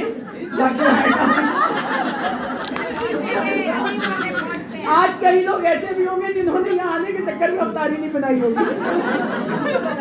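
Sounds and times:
overlapping chatter: 0:00.0 - 0:06.0.

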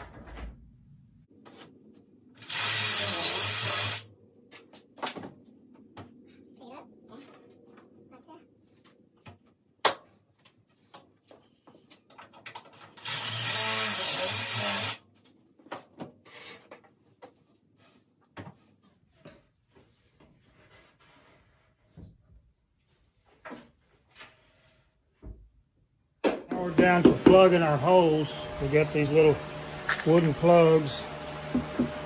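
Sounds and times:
drill motor whining: 0:02.4 - 0:04.0, 0:13.0 - 0:15.0.

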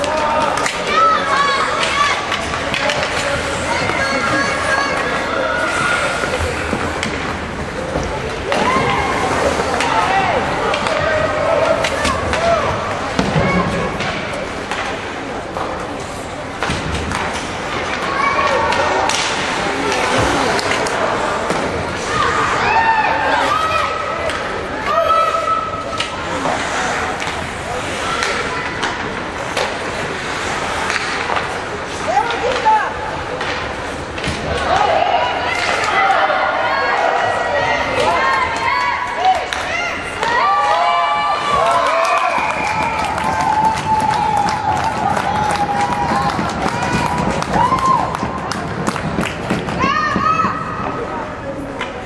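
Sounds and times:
sticks and puck clacking on ice: 0:00.0 - 0:22.3, 0:25.9 - 0:36.0, 0:41.4 - 0:51.0
people calling and shouting: 0:00.0 - 0:52.0.

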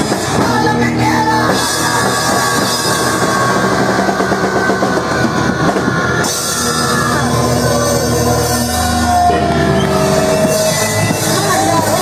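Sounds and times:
drum kit: 0:00.0 - 0:12.0
punk band playing live: 0:00.0 - 0:12.0.

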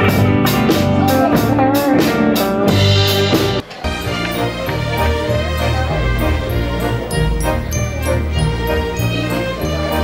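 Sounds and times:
electric guitar lead with bends: 0:00.0 - 0:03.7
drums steady beat: 0:00.0 - 0:10.0
electric bass line: 0:04.3 - 0:09.2.

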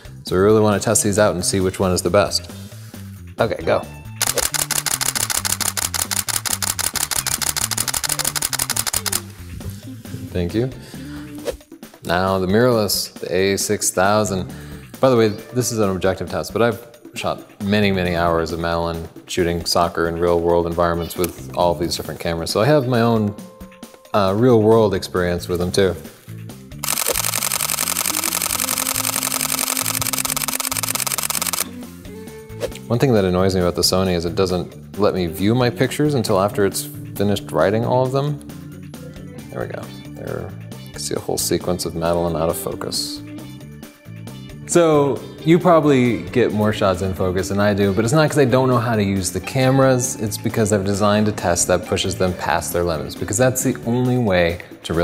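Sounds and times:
background music: 0:00.0 - 0:55.0
camera shutter burst: 0:04.2 - 0:09.3, 0:26.8 - 0:31.7.

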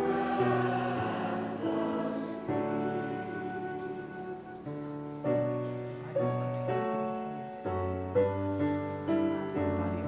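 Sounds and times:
choir singing a slow hymn: 0:00.0 - 0:05.5.

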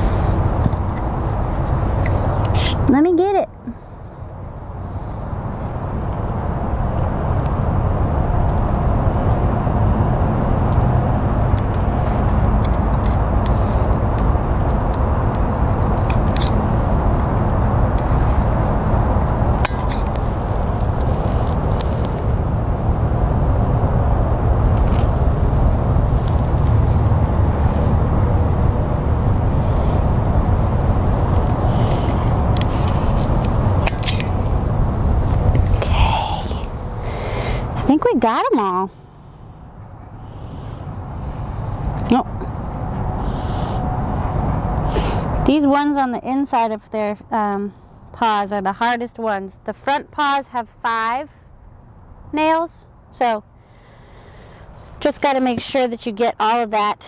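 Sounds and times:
low outdoor rumble: 0:00.0 - 0:57.0.

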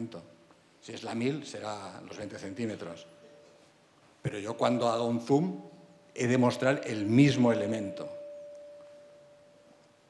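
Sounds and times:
steady ringing tone: 0:06.8 - 0:10.0.

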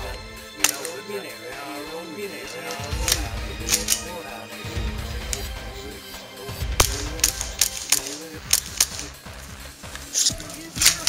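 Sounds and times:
background music: 0:00.0 - 0:11.0
pistol slide clacking: 0:00.6 - 0:05.6, 0:06.7 - 0:11.0.

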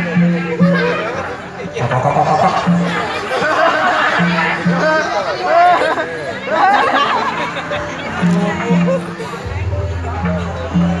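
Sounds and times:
amplified live music: 0:00.0 - 0:11.0
audience chatter: 0:00.0 - 0:11.0.

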